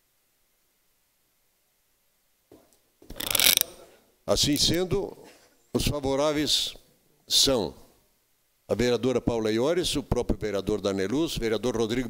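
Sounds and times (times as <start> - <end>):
microphone handling scrape: 3.1 - 3.7
microphone click: 4.5 - 4.9.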